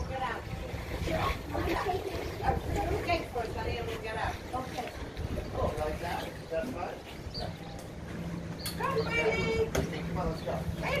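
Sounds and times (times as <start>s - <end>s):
people talking: 0.0s - 7.0s, 8.7s - 11.0s.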